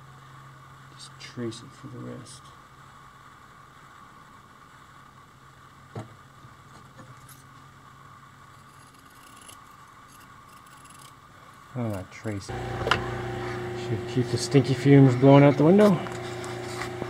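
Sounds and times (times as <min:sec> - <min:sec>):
electric fan hum: 0:07.3 - 0:17.0.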